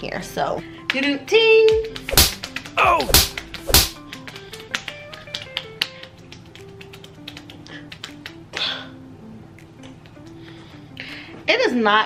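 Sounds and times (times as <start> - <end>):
soft background music: 0.0 - 12.0
hand slapping bare stomach: 1.7 - 8.7.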